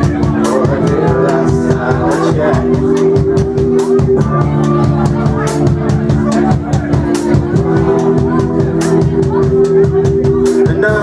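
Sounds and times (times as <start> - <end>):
drum kit with cymbal strikes: 0.0 - 11.0
electric guitars and bass: 0.0 - 11.0.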